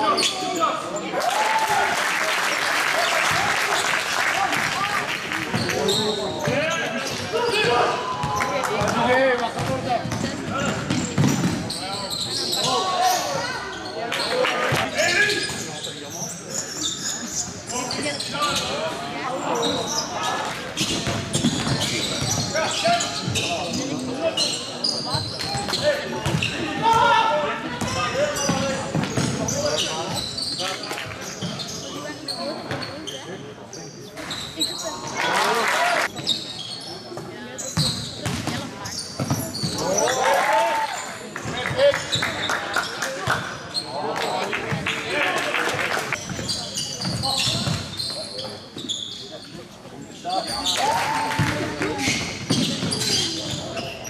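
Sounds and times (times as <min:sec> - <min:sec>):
basketball bouncing on court: 0:09.6 - 0:11.7, 0:20.8 - 0:22.5, 0:37.8 - 0:39.8.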